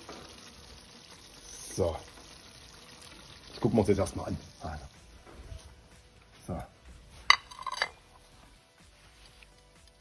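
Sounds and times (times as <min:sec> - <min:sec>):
plate and fork clinking: 0:07.3 - 0:08.0.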